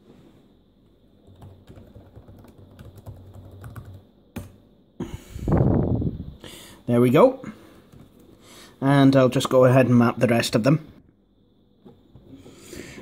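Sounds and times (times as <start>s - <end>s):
laptop keyboard typing: 1.2s - 4.6s.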